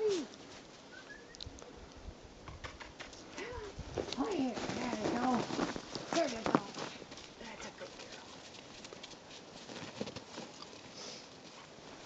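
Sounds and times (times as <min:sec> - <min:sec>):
paws pattering on snow: 0:03.8 - 0:12.0
boots crunching on snow: 0:04.0 - 0:07.3.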